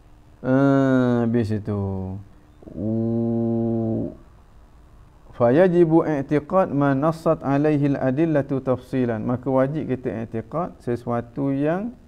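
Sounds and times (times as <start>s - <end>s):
man's wordless hesitation sound: 0.4s - 4.3s.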